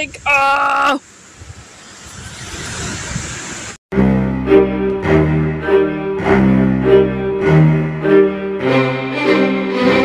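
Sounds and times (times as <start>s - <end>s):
wind rushing: 1.2s - 3.8s
low bowed strings music: 3.9s - 10.0s.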